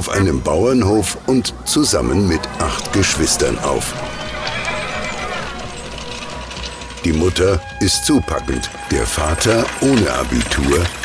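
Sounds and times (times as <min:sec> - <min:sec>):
wooden wagon rattling and creaking: 0:00.1 - 0:11.0.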